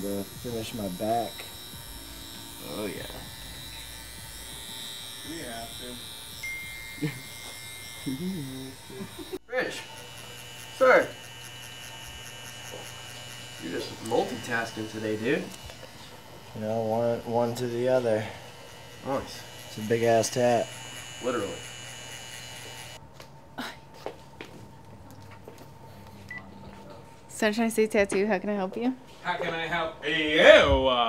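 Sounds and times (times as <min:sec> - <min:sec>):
tattoo machine running: 0:00.0 - 0:23.0.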